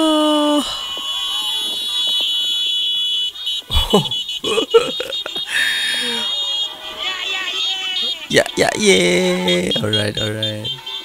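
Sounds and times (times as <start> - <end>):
car horns honking: 0.0 - 11.0.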